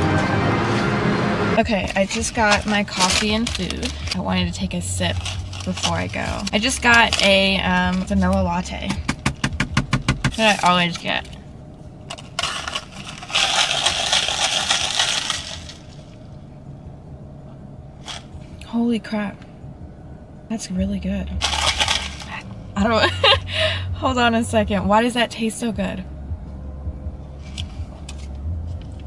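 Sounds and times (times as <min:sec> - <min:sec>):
car engine idling: 0:00.0 - 0:29.0
ice cubes rattling in plastic cup: 0:02.0 - 0:04.2, 0:12.1 - 0:16.0, 0:21.4 - 0:22.4.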